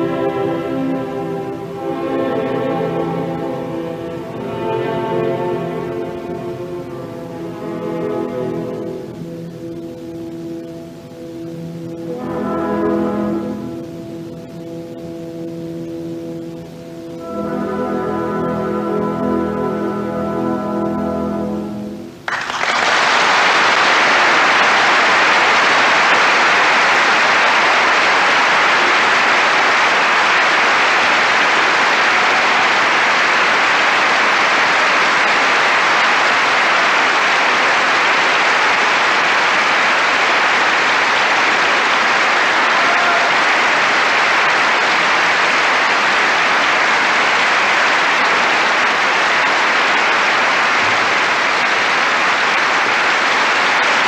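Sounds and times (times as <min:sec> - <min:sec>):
audience applauding: 0:00.0 - 0:12.6, 0:22.2 - 0:54.0.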